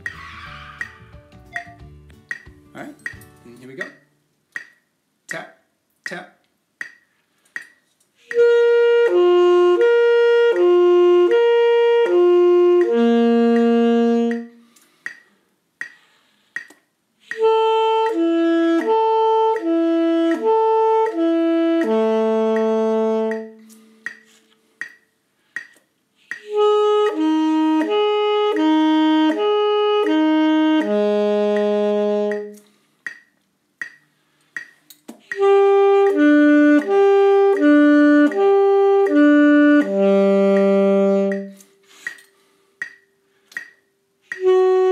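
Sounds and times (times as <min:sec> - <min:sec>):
saxophone slurring between notes: 0:00.0 - 0:01.8, 0:08.2 - 0:14.7, 0:17.2 - 0:24.6, 0:26.3 - 0:32.6, 0:35.3 - 0:42.1, 0:44.2 - 0:44.9.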